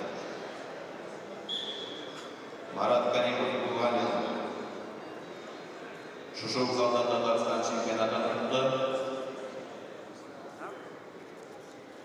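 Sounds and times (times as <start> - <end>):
hall background murmur: 0.0 - 12.0.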